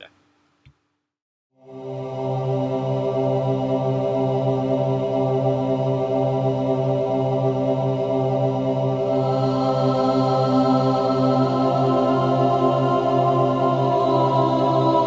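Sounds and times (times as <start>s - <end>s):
low droning chord: 1.6s - 15.0s.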